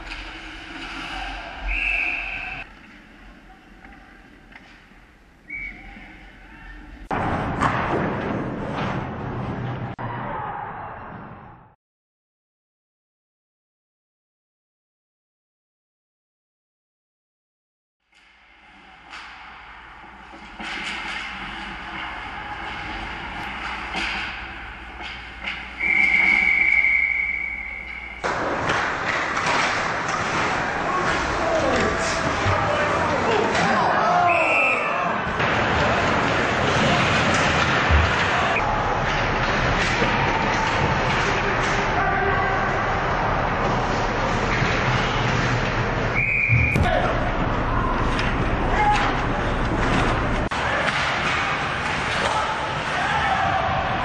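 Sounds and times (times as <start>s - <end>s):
hockey game noise: 0.0s - 11.8s, 18.1s - 54.0s
ice rink ambience: 0.0s - 11.8s, 18.1s - 54.0s
referee's whistle: 1.6s - 2.6s, 5.5s - 6.1s, 25.8s - 28.2s, 34.2s - 35.1s, 46.2s - 46.9s
sticks and puck clacking: 18.2s - 34.1s, 35.4s - 42.8s, 46.9s - 54.0s.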